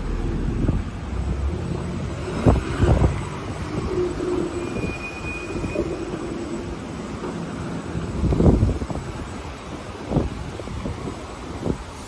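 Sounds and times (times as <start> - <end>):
city street traffic: 0.0 - 12.0
short high squeal: 3.4 - 6.8.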